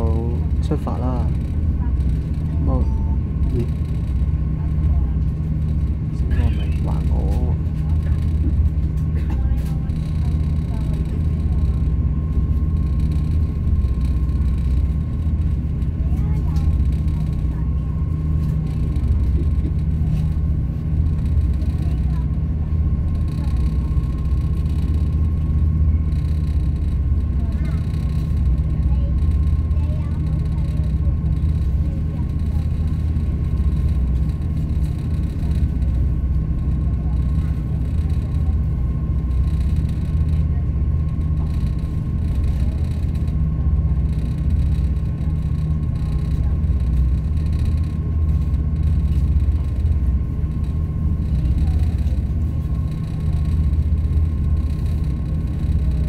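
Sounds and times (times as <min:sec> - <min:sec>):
ferry engine rumble: 0:00.0 - 0:56.0
thin engine whine: 0:00.0 - 0:56.0.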